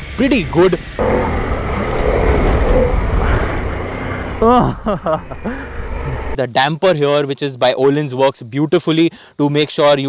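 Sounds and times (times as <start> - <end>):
wind noise: 0.0 - 6.4
rider laughing: 3.2 - 6.4.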